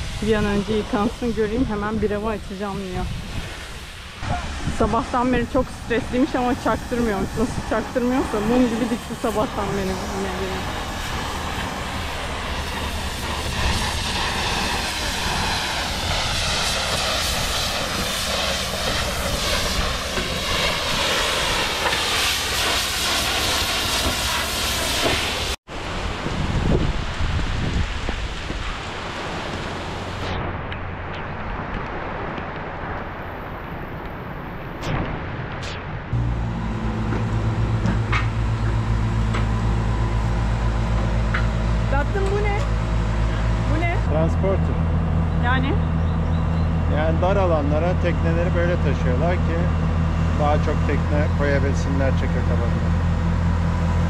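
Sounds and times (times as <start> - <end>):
heavy rain: 0.0 - 41.2
wind hiss: 0.0 - 44.0
engine low hum: 0.0 - 54.0.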